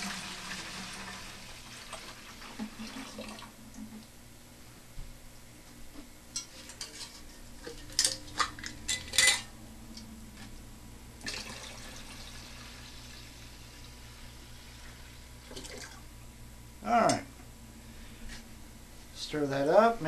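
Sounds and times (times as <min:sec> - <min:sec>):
water pouring into watering can: 0:00.0 - 0:03.5, 0:11.2 - 0:16.0
glass jars clinking: 0:06.8 - 0:09.5.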